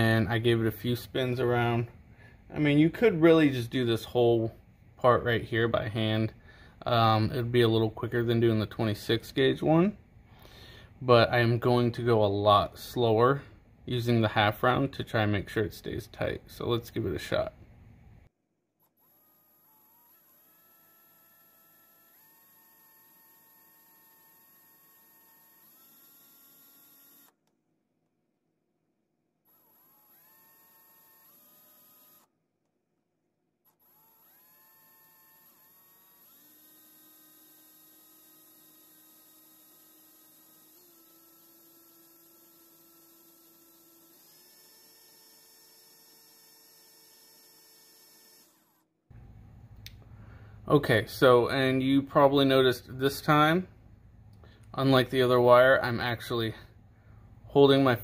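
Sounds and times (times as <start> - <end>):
electric drill whining: 18.8 - 27.5, 29.4 - 32.3, 33.6 - 49.0.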